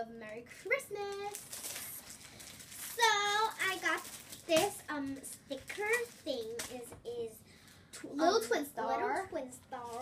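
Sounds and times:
girl making wordless sounds: 2.8s - 10.0s.

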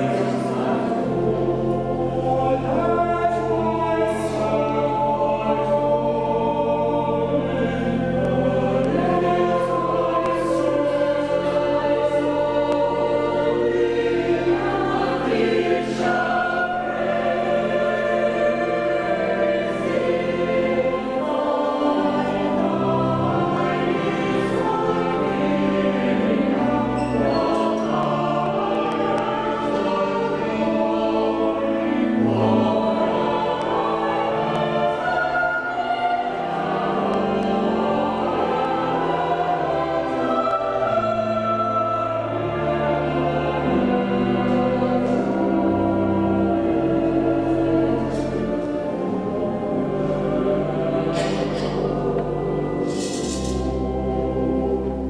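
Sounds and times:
church choir singing: 0.0s - 55.0s
low organ notes: 0.0s - 55.0s.

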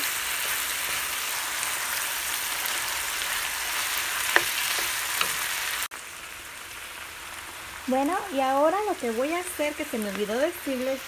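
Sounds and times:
meat and onions sizzling in pan: 0.0s - 11.0s.

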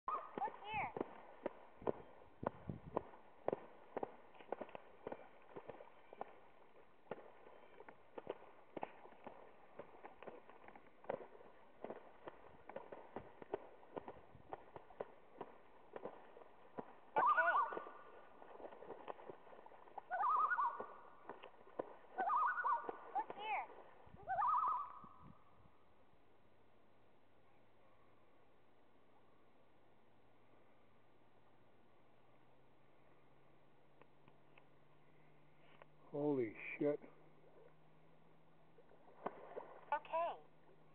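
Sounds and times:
wavering loon calls: 0.0s - 0.8s, 17.1s - 18.4s, 19.9s - 21.4s, 22.0s - 23.6s, 24.2s - 25.2s
water splashing: 0.0s - 25.0s, 38.3s - 40.9s.

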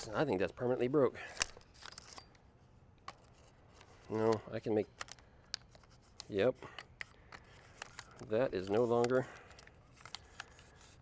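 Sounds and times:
tripod parts scraping and rustling: 1.2s - 11.0s.

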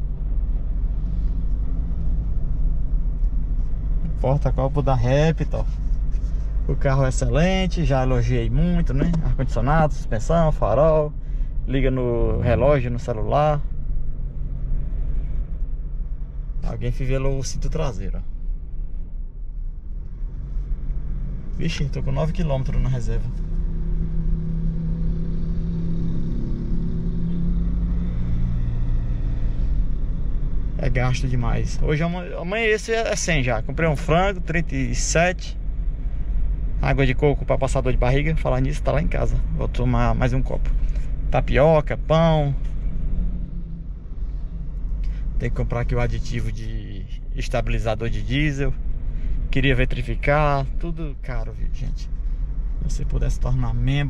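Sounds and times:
road and engine rumble in car cabin: 0.0s - 54.0s.

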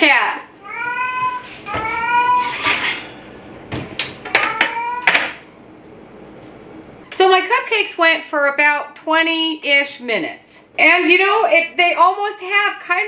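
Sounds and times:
cat meowing: 0.6s - 2.8s, 4.3s - 5.4s.

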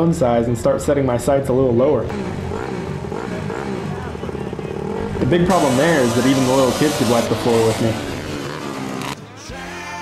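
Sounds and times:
dirt bike engines running: 0.8s - 9.4s.

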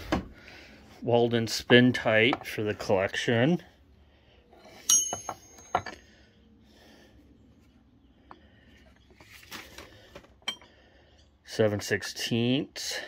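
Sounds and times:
metal tools clinking on wood: 4.6s - 6.1s, 10.4s - 10.8s
soft handling noise: 7.5s - 10.6s.

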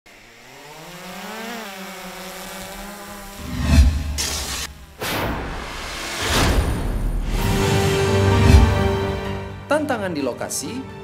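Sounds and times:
drone propellers whirring: 0.1s - 9.2s.

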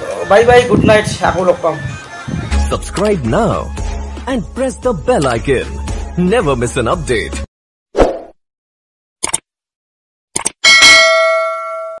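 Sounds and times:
bell ding: 10.6s - 12.0s.

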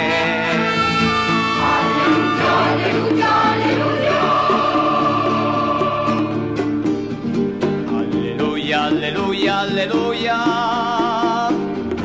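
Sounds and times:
choir singing long notes: 0.0s - 6.7s.

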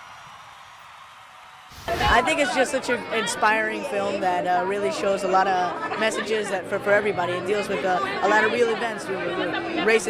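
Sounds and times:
quick whoosh: 1.7s - 2.4s.

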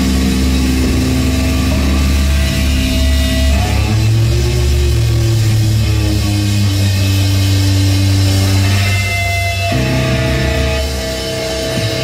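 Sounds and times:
distorted guitar and bass drone: 0.0s - 12.0s.

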